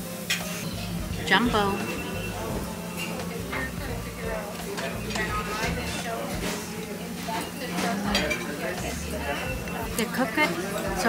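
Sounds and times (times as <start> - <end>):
dishes and cutlery clinking: 0.2 - 11.0
diners talking: 0.8 - 11.0.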